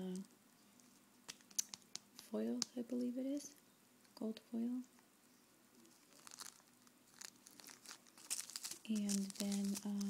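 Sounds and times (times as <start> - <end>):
plastic baggies crinkling: 5.9 - 10.0.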